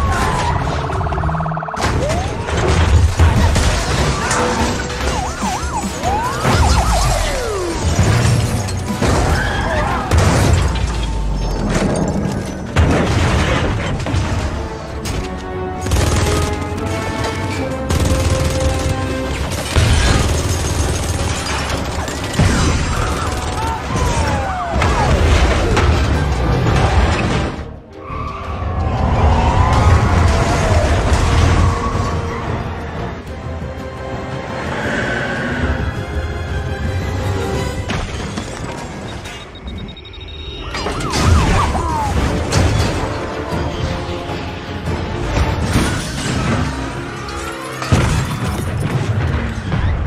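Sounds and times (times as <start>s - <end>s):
cars crashing: 0.0s - 15.4s, 19.3s - 32.9s, 40.6s - 50.0s
dramatic score music: 0.0s - 50.0s.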